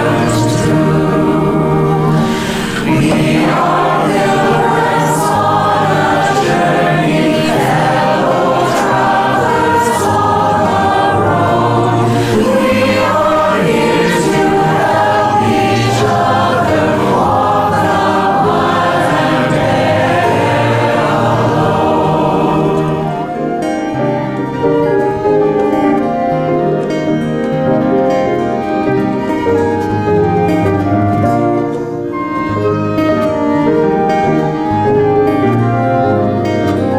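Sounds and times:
choir singing a hymn: 0.0 - 36.9
instrumental accompaniment: 0.0 - 36.9.

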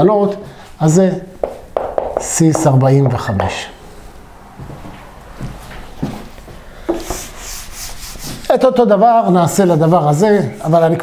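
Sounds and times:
eraser swishing on whiteboard: 6.9 - 8.7.

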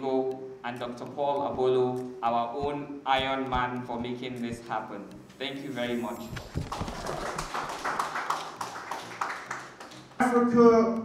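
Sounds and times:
audience applauding: 6.6 - 10.2.

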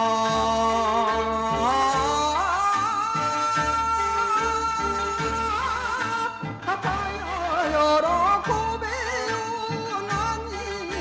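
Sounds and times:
ornamented folk singing: 0.0 - 11.0
traditional instrumental accompaniment: 0.0 - 11.0.

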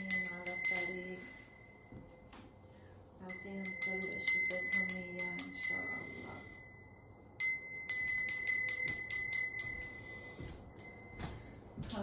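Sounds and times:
hand bell ringing rapidly: 0.0 - 1.0, 3.3 - 6.2, 7.4 - 10.0.

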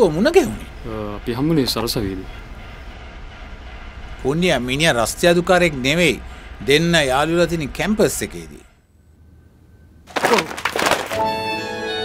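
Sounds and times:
books falling on floor: 10.1 - 11.4
background music: 11.0 - 12.0.

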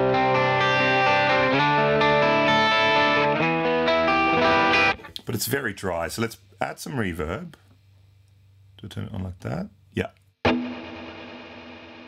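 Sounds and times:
electric guitar chord ringing: 0.0 - 5.0, 10.5 - 12.0.

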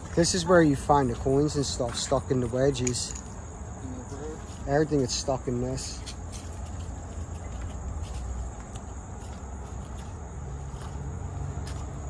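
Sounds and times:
insects chirring: 0.0 - 12.0
footsteps on cobblestones: 6.2 - 12.0.

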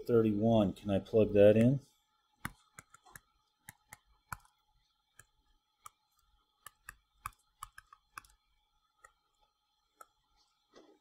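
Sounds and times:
stylus tapping on touchscreen: 2.4 - 6.0, 6.6 - 8.4.

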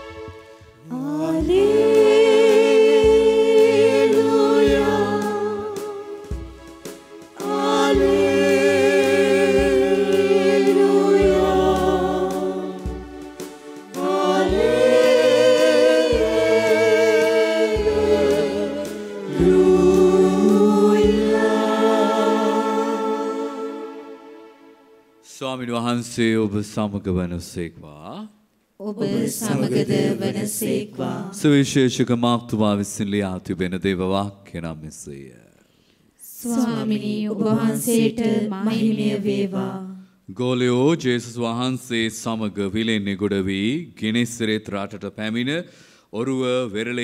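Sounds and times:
instrumental accompaniment: 0.0 - 25.3
church singing with vibrato: 0.8 - 6.6, 7.2 - 24.8, 28.8 - 31.7, 36.3 - 40.1.

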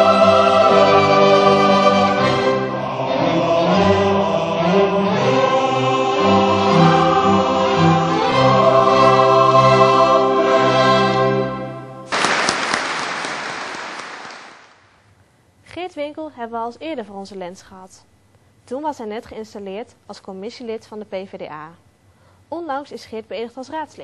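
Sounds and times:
choir and string orchestra: 0.0 - 12.0
applause: 12.1 - 14.9.

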